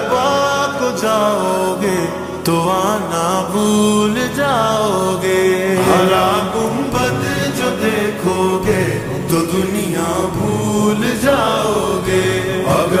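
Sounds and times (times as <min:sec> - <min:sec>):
chanted vocal backing: 0:00.0 - 0:13.0
person singing with reverb: 0:00.0 - 0:13.0.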